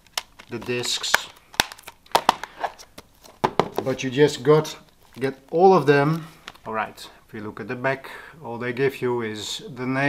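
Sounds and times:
plastic cases clacking: 0:00.0 - 0:06.7.

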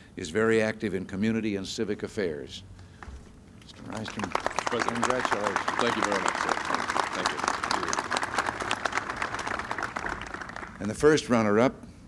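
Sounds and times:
audience applauding: 0:03.9 - 0:11.2.

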